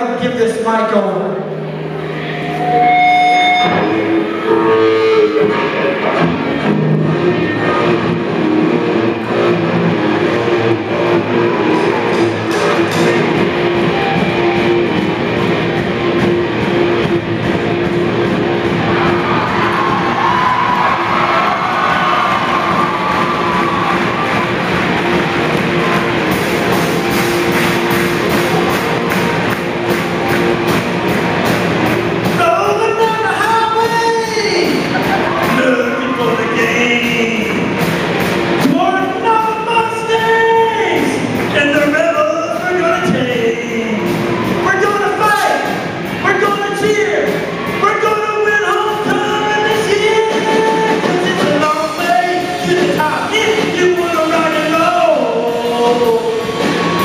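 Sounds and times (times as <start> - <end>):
live rock band playing: 0.0 - 57.0
electric guitars: 1.2 - 57.0
drum kit: 2.2 - 57.0.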